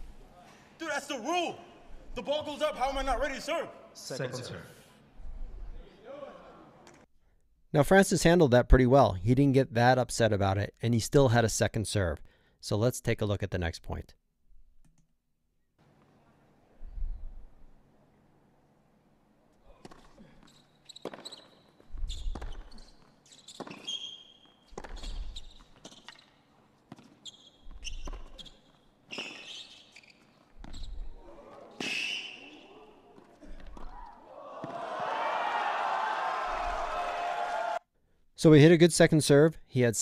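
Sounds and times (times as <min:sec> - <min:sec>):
shoe squeaks: 0:19.7 - 0:34.0
racket striking tennis ball: 0:24.7 - 0:25.4
crowd applause and cheering: 0:34.3 - 0:37.8.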